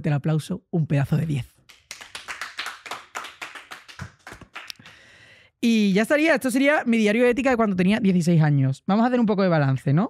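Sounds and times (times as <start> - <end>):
person clapping: 1.7 - 5.0.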